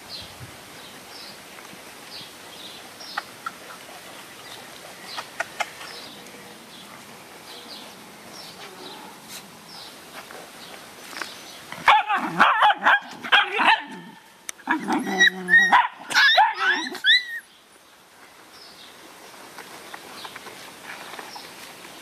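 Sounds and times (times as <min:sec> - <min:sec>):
dogs barking and yelping: 0:11.8 - 0:17.5.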